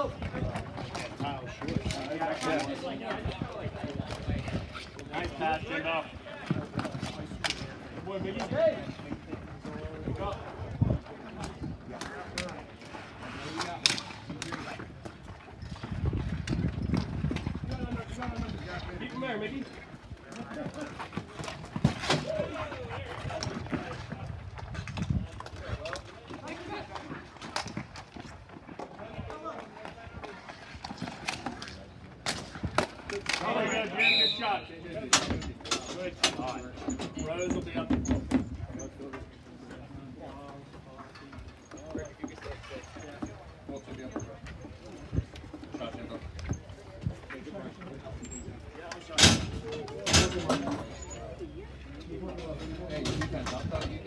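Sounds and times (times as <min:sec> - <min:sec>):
players' voices: 0:00.0 - 0:54.0
hockey sticks clacking on ball: 0:06.4 - 0:09.7, 0:11.3 - 0:15.3, 0:29.6 - 0:33.7.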